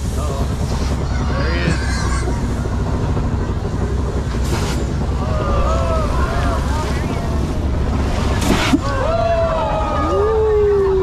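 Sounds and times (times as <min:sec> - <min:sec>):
rush of hissing noise: 0:00.0 - 0:09.4
tram low rumble: 0:00.0 - 0:11.0
voices: 0:00.0 - 0:11.0.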